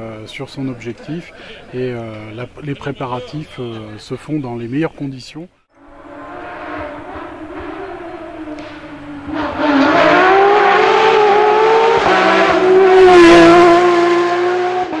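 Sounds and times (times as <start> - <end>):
rally car engine running hard: 5.9 - 15.0.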